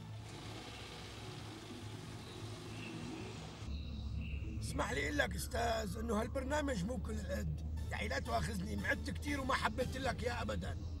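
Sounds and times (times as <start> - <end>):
car engine driving along street: 0.0 - 3.7.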